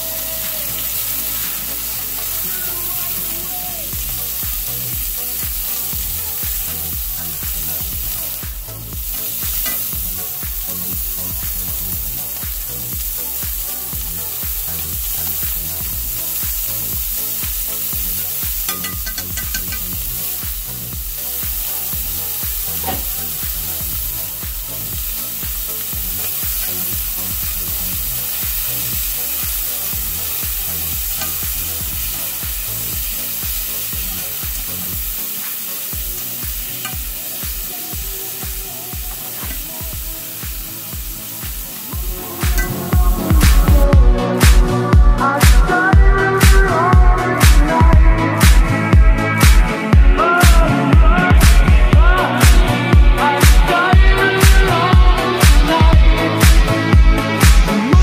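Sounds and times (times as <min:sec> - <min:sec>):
seafood sizzling in oil: 0:00.0 - 0:43.8
background music with low beat: 0:00.0 - 0:58.0.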